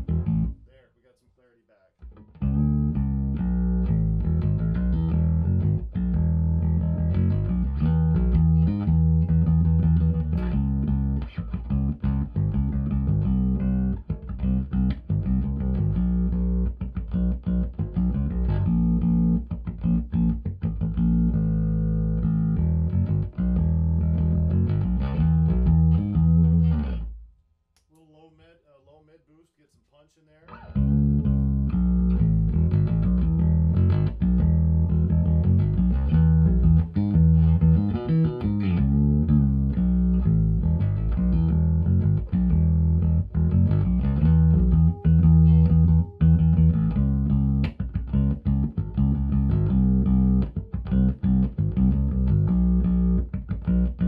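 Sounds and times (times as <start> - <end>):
growling electric bass guitar: 0.0 - 0.7, 2.0 - 27.1, 30.5 - 54.0.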